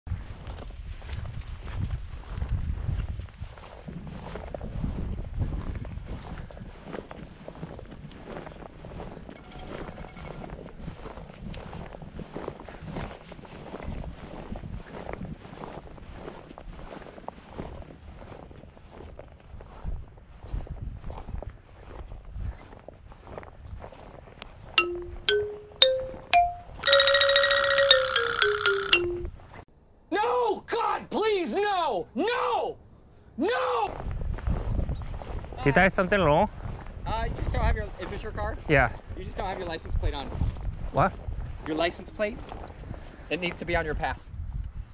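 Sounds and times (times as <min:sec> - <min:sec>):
comic plinked notes effect: 0:24.8 - 0:29.3.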